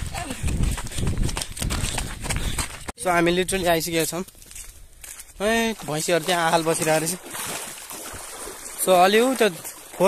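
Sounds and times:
footsteps on dry ground: 0.0 - 10.0.

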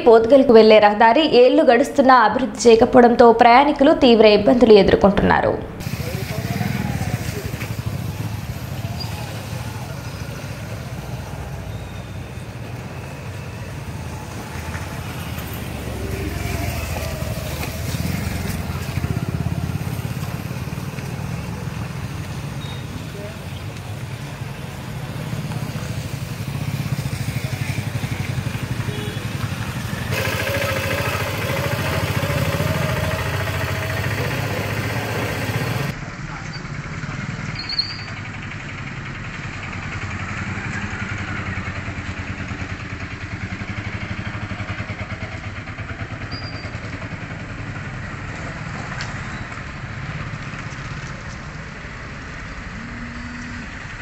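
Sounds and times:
motorcycle engines passing: 3.5 - 54.0
car engines passing: 5.6 - 46.2, 46.8 - 54.0.

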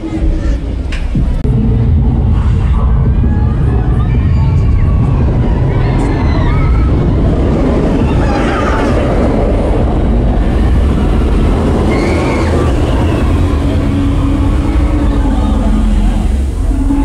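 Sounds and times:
roller coaster train rumbling: 0.0 - 17.0.

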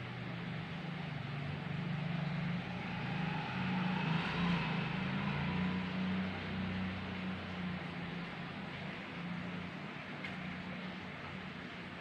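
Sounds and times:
low engine hum: 0.7 - 9.5.

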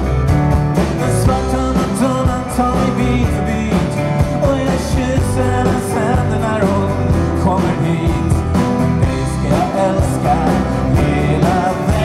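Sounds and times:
drum beat: 0.0 - 12.0
rock band playing: 0.0 - 12.0
man singing: 0.9 - 12.0.

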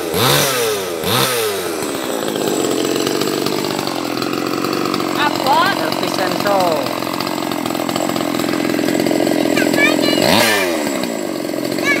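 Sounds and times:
chainsaw engine idling: 0.0 - 12.0.

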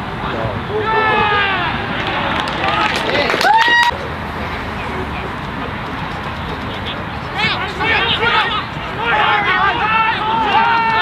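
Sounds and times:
people shouting and calling out: 0.2 - 4.0, 6.7 - 11.0
loud high held shout: 0.7 - 4.0, 7.4 - 11.0.

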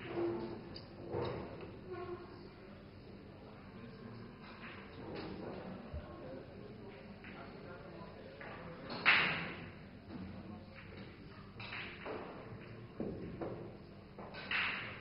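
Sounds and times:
low murmur of voices: 0.0 - 15.0
pool balls clacking: 11.6 - 15.0.

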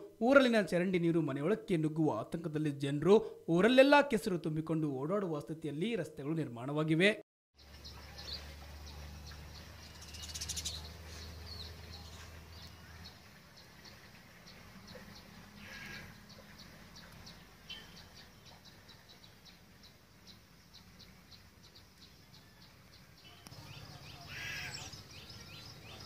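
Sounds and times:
descending bird chirps: 7.6 - 13.2
birds chirping: 7.6 - 26.0.

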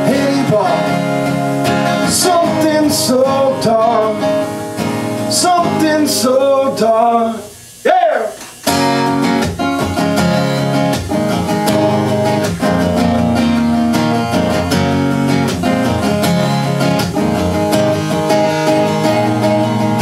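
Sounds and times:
man singing: 0.0 - 1.1, 1.9 - 4.5, 5.2 - 8.4
acoustic guitar strumming: 0.0 - 20.0.

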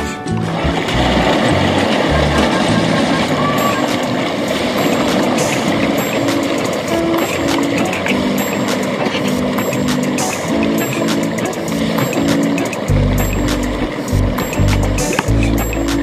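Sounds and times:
background music: 0.0 - 16.0
fish splashing at water surface: 0.5 - 15.3.

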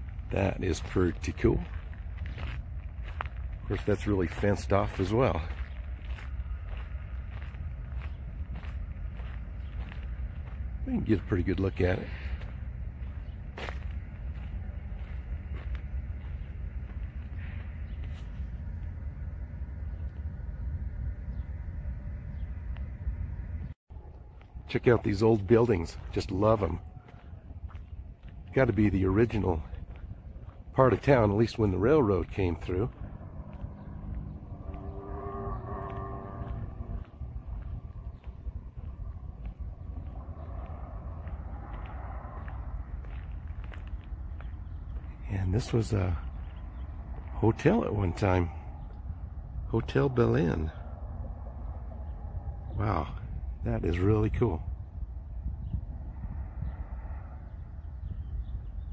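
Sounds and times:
low street rumble: 0.0 - 58.9
wind buffeting microphone: 0.0 - 58.9
faint horn-like tone: 33.0 - 37.6.

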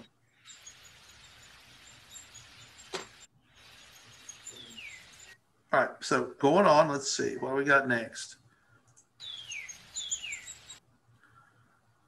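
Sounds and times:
hissy background: 0.0 - 12.0.

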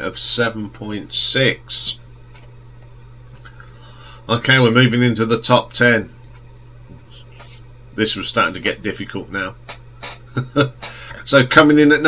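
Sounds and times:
person speaking: 0.0 - 2.0, 6.9 - 10.3
steady low hum: 0.0 - 12.0.

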